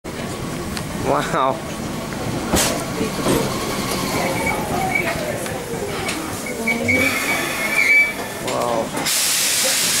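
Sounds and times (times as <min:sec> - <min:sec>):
train brakes squealing: 0:06.4 - 0:10.0
compressed air hiss of doors: 0:09.0 - 0:10.0.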